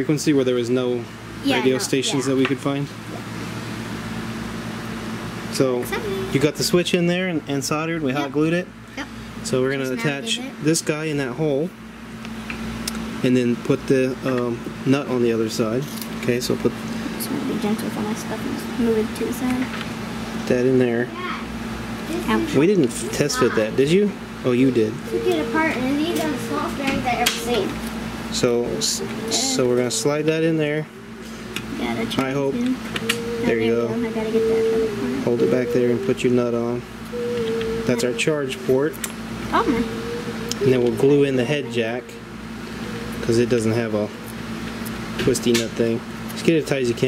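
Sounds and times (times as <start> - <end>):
child talking: 1.4 - 2.6, 5.8 - 6.4, 9.7 - 10.6, 17.2 - 19.8, 21.1 - 24.0, 25.1 - 27.8, 29.2 - 29.9, 31.7 - 32.8, 33.4 - 35.3, 37.9 - 38.6, 39.5 - 39.9.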